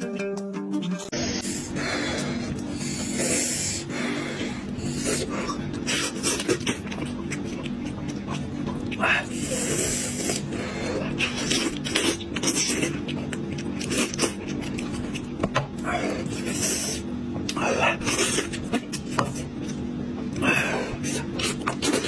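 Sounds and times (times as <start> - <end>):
man eating and chewing: 0.0 - 22.0
steady low hum: 0.0 - 22.0.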